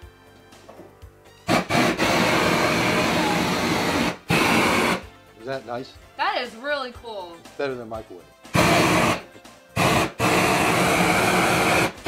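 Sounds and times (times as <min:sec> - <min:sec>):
propane torch hissing: 0:01.5 - 0:05.1, 0:08.5 - 0:12.0.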